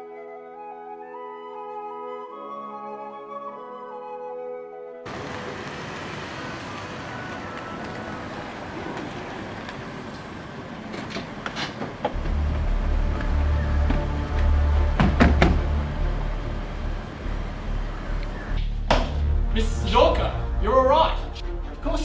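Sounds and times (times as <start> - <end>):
car engine running: 12.1 - 18.8
car door clicks: 13.8 - 15.7.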